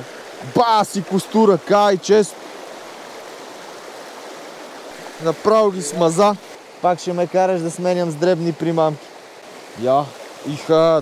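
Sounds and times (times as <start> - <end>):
river rushing over rapids: 0.0 - 11.0.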